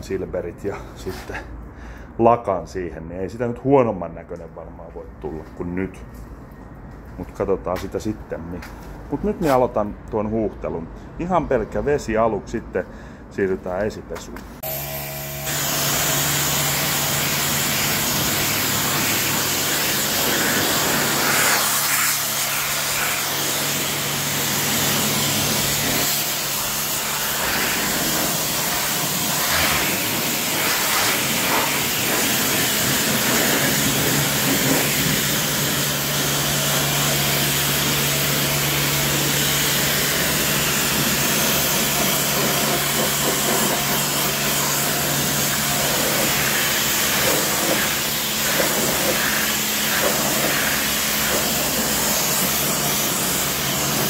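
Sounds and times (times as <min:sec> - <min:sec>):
pressure washer jet hissing: 0:14.6 - 0:54.0.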